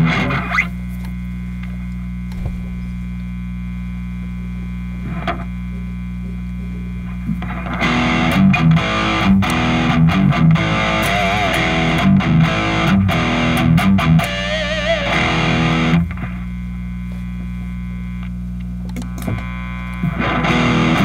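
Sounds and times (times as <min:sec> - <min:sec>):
distorted electric guitar riff: 0:02.3 - 0:04.3, 0:07.4 - 0:16.5, 0:19.4 - 0:21.0.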